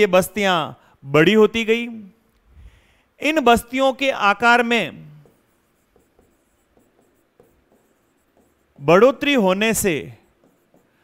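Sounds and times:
marker pen writing on whiteboard: 4.3 - 11.0.

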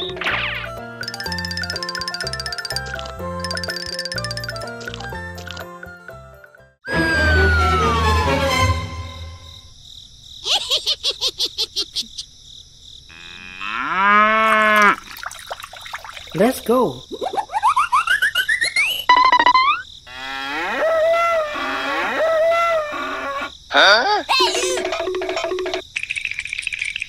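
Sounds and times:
squeaky rising sweeps: 6.9 - 9.6
cow mooing: 13.1 - 15.0.

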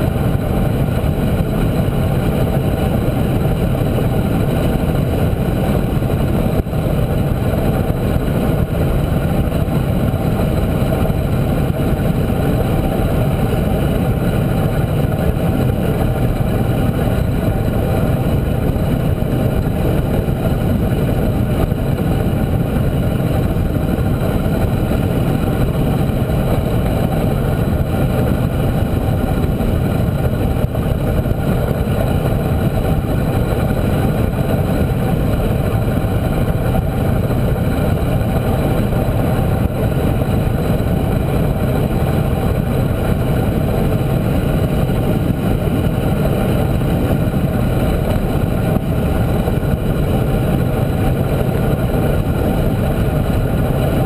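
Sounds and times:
tyre road noise: 0.0 - 54.0
wind buffeting microphone: 0.0 - 54.0.

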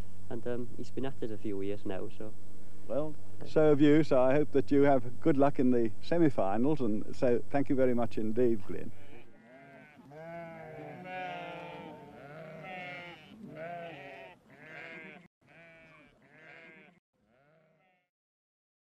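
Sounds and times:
sheep bleating: 8.8 - 18.1.

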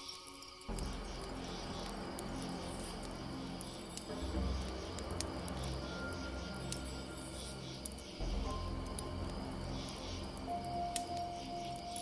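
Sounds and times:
crickets chirring: 0.0 - 12.0
soft ambient music: 0.0 - 12.0
wood fire crackling: 0.0 - 12.0.

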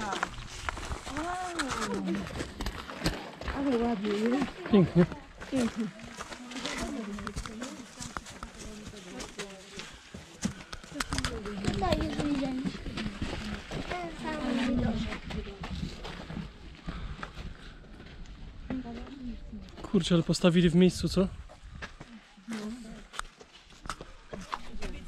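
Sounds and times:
footsteps crunching on stony path: 0.0 - 25.0
people talking indistinctly: 3.5 - 17.2.

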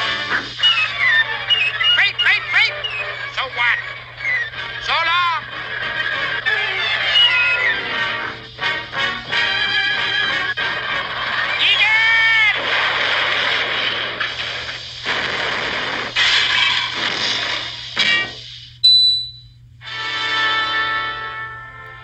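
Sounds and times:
noisy sound effects: 0.0 - 8.4
cartoon music: 0.0 - 10.7.

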